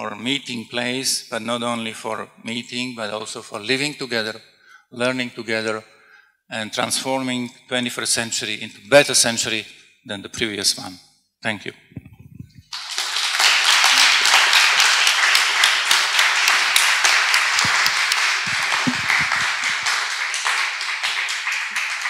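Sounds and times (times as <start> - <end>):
audience applauding: 12.7 - 22.0.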